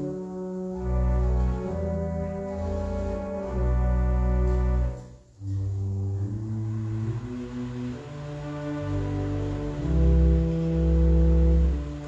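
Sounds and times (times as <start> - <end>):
pipe organ playing softly: 0.0 - 12.0.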